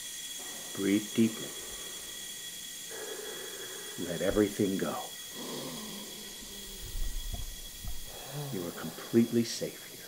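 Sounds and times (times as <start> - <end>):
man breathing deeply through mask: 0.0 - 9.6.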